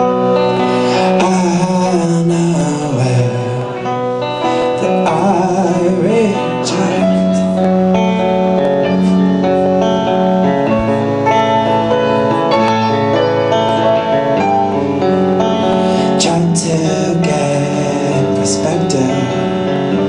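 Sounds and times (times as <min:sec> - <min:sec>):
electric guitar strummed: 0:00.0 - 0:20.0
keyboard chords: 0:00.0 - 0:20.0
person singing: 0:00.0 - 0:20.0.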